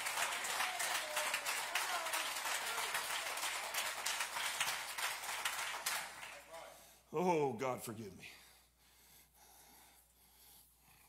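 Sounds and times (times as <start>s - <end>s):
congregation applauding: 0.0s - 6.9s.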